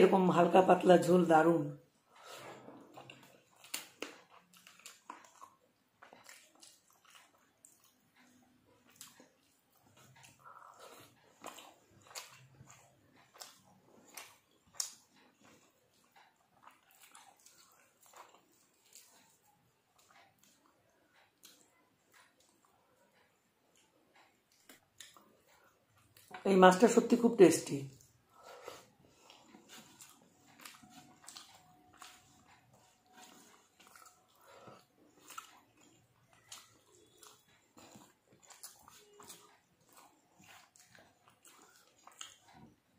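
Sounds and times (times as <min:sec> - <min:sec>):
fingers mixing food on metal plate: 0:00.0 - 0:42.9
chewing: 0:01.8 - 0:27.2, 0:27.9 - 0:42.9.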